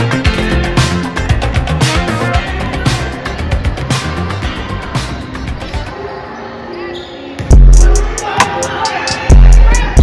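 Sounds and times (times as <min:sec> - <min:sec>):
music playing: 0:00.0 - 0:10.0
sneaker squeak: 0:06.7 - 0:07.5.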